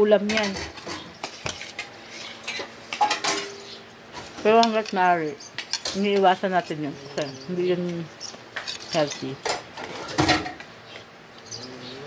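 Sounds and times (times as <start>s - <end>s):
cutlery clinking on plates: 0.3s - 3.7s.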